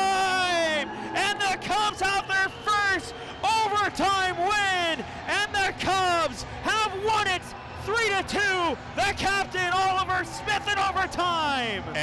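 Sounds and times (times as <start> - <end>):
commentator speaking excitedly: 0.0 - 12.0.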